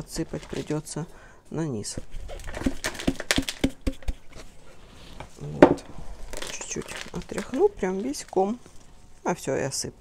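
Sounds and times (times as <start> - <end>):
potting soil crumbling: 0.0 - 1.0, 1.8 - 4.5, 5.2 - 9.4.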